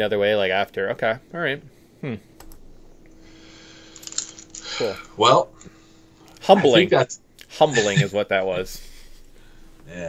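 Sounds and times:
faint steady hum: 0:00.0 - 0:10.0
man humming hmm: 0:02.0 - 0:02.3.

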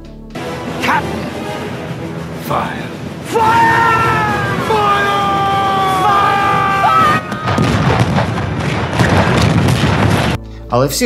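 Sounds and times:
man battle yelling: 0:03.2 - 0:07.6.

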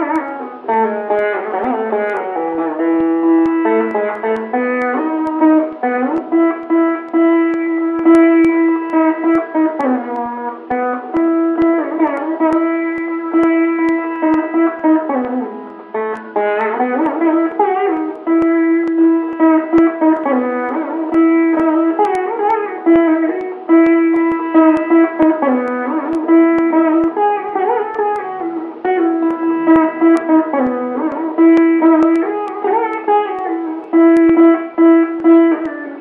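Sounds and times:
plucked string melody: 0:00.0 - 0:36.0.

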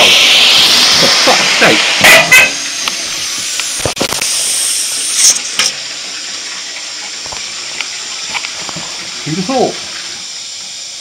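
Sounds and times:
radiator valve hissing and spitting: 0:00.0 - 0:11.0.

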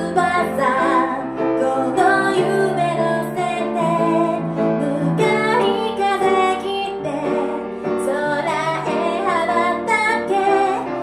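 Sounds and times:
grand piano: 0:00.0 - 0:11.0
woman singing into microphone: 0:00.0 - 0:11.0.

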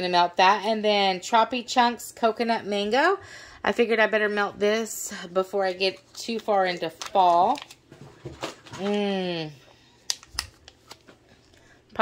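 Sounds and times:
plastic bag crinkling: 0:05.7 - 0:09.0.

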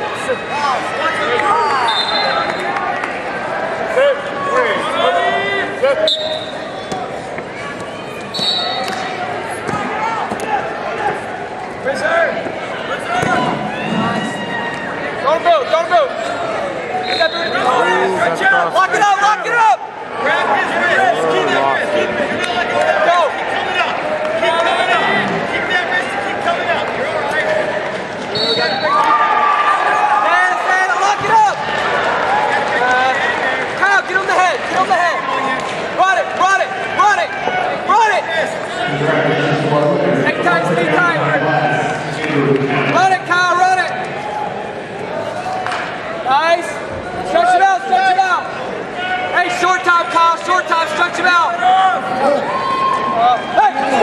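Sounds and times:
people shouting in echoing arena: 0:00.0 - 0:54.0.

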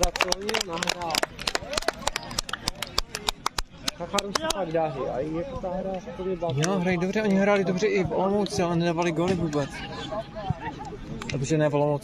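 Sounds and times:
faint voices: 0:00.0 - 0:11.9.

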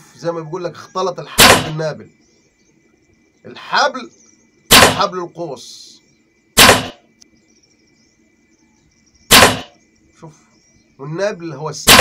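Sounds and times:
compound bow shots: 0:01.4 - 0:01.8, 0:04.7 - 0:05.1, 0:06.6 - 0:07.1, 0:09.3 - 0:09.8.

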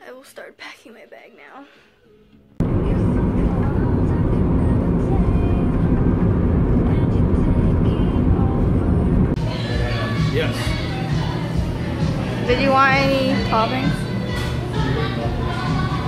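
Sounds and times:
music: 0:00.0 - 0:16.0
car road and wind noise: 0:02.6 - 0:09.4
restaurant chatter: 0:09.4 - 0:16.0.

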